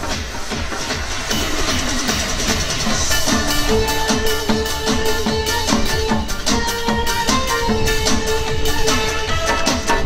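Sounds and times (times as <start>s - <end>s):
instrumental music over loudspeaker: 0.0s - 10.0s.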